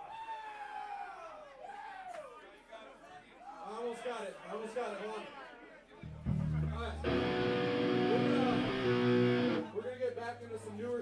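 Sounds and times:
electric guitar chord ringing: 0:06.2 - 0:09.8.

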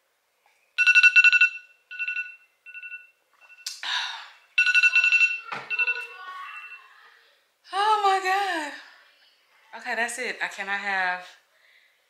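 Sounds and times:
phone timer alarm beeping: 0:00.8 - 0:03.7, 0:04.6 - 0:06.8.

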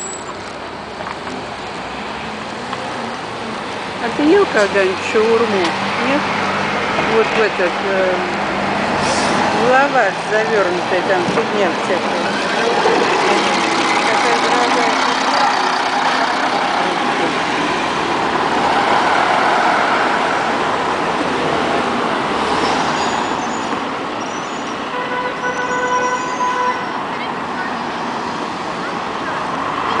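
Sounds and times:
diesel bus running: 0:00.0 - 0:30.0
street traffic: 0:00.0 - 0:30.0.

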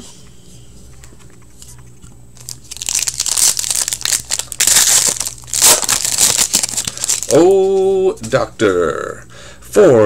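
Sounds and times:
wrapper tearing and crinkling: 0:02.4 - 0:07.6.

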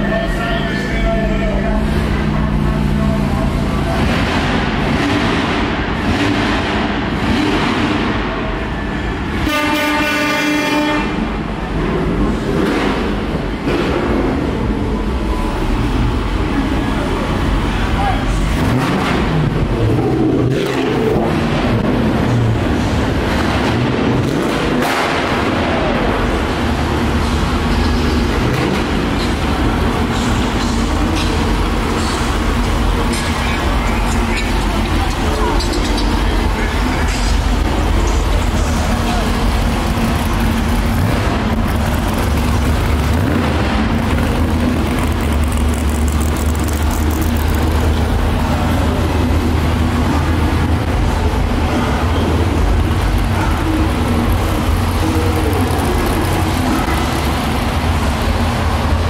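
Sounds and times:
crowd chatter: 0:00.0 - 0:06.1, 0:14.3 - 0:24.1, 0:25.3 - 0:59.0
car engines: 0:00.0 - 0:59.0
loud air horn: 0:09.4 - 0:11.3.

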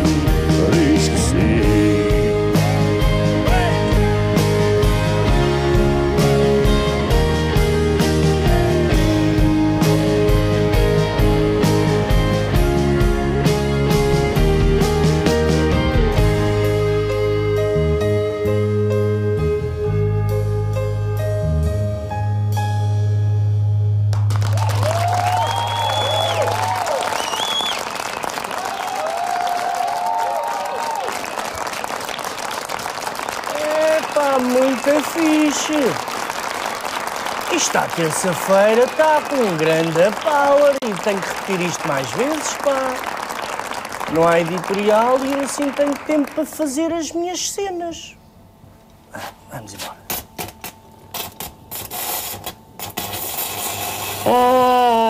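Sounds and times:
audience applauding and cheering: 0:24.1 - 0:46.9
whoops and whistles: 0:24.8 - 0:27.9
electric arc welder crackling: 0:50.1 - 0:54.7.

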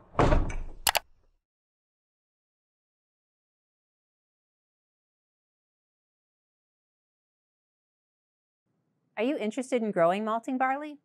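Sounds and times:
sharp clicks: 0:00.8 - 0:01.0.

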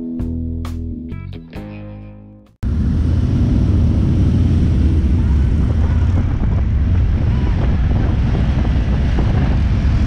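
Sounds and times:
motorcycle engines running: 0:02.6 - 0:10.0.

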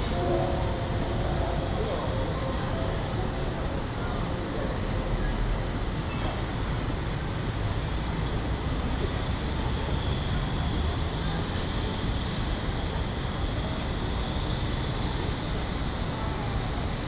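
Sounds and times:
faint voices: 0:00.0 - 0:07.1
low traffic rumble: 0:00.0 - 0:17.0.

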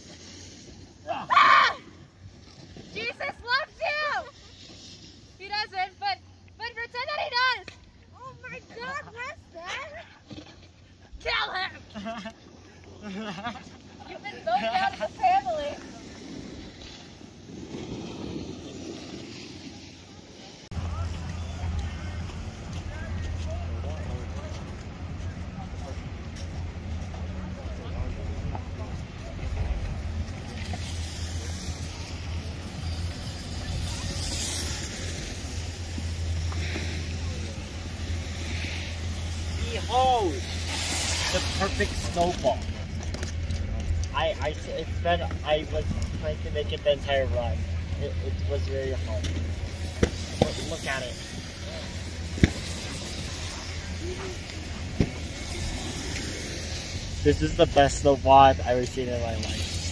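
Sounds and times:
faint voices: 0:19.5 - 0:59.9
broad hiss: 0:29.4 - 0:43.0, 0:48.4 - 0:59.9.

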